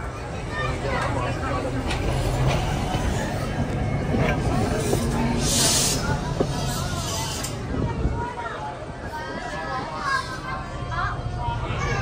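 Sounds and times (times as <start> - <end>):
background voices chatting: 0.0 - 12.0.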